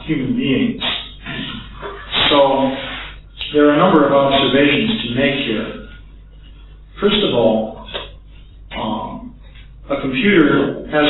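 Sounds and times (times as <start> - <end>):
man talking: 0.0 - 5.9, 7.0 - 8.0, 8.7 - 11.0
steady low hum: 0.0 - 11.0
man clearing throat: 0.8 - 2.8.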